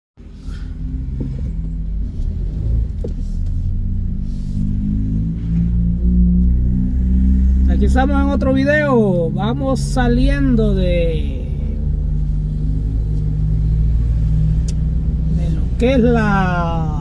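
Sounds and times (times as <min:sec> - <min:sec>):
car engine and road rumble: 0:00.2 - 0:17.0.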